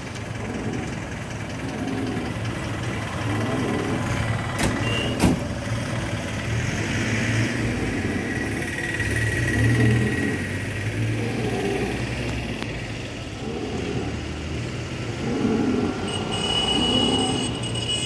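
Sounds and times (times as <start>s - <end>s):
vehicles passing on road: 0.0s - 18.0s.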